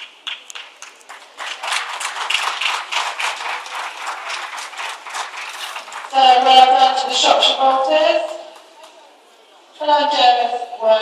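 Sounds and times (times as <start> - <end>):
audience applauding: 0.0 - 6.8.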